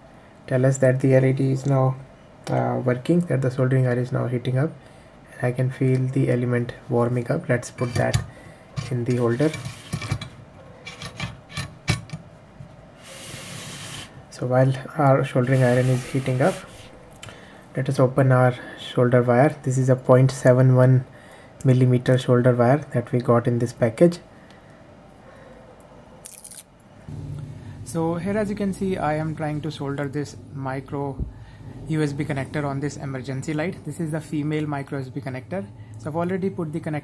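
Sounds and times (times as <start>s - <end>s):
steady low hum: 0.0s - 37.0s
steady rubbing: 13.0s - 14.3s, 15.3s - 17.1s
rustling of solder wire spool: 15.4s - 17.0s.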